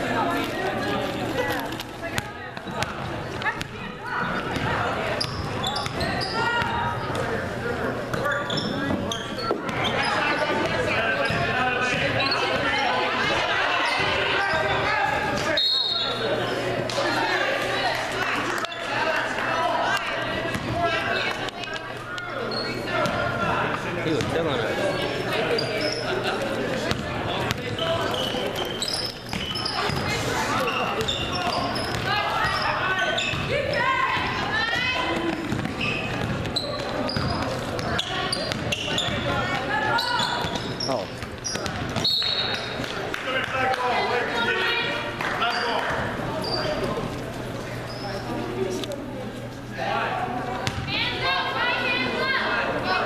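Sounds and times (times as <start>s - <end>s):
short high shoe squeaks: 8.2s - 10.5s, 27.7s - 33.4s, 35.8s - 39.2s, 40.0s - 42.8s
basketball bouncing on hardwood floor: 35.5s - 36.5s, 50.6s - 50.9s.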